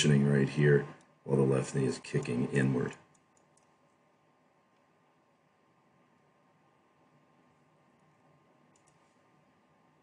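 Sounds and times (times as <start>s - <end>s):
faint room hiss: 0.0s - 10.0s
faint clicks: 2.2s - 4.0s, 8.0s - 9.2s.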